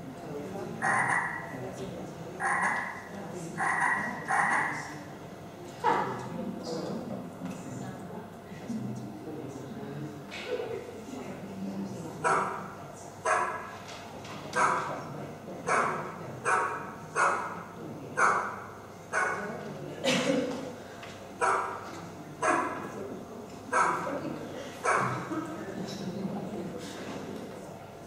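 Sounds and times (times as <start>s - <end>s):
dog barking over loudspeakers: 0.8s - 1.6s, 2.4s - 4.9s, 12.2s - 13.7s, 14.6s - 14.9s, 15.7s - 17.6s, 18.2s - 19.5s, 21.4s - 22.9s, 23.7s - 24.1s, 24.8s - 25.2s.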